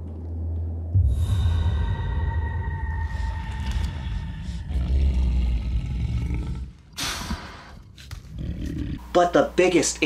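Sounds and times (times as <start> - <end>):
low rumbling drone: 0.0 - 7.1.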